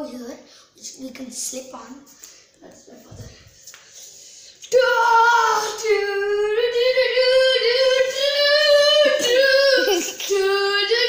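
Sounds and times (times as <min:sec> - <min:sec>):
child singing long held notes: 0:04.7 - 0:11.0.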